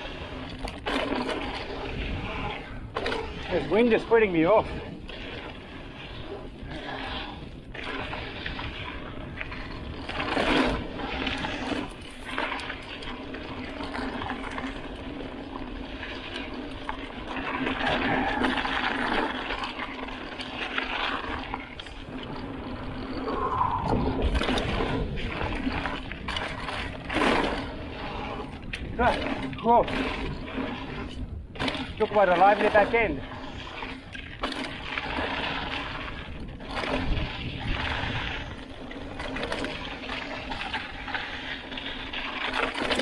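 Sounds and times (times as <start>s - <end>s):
wind buffeting microphone: 0.0s - 42.5s
bike tyres rolling on dirt: 0.0s - 43.0s
bike knocks and rattles: 0.4s - 1.7s.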